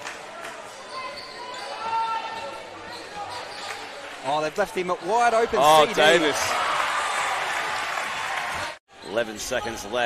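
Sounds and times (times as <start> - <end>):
arena crowd noise: 0.0 - 10.0
sneakers squeaking on wooden floor: 0.9 - 3.8.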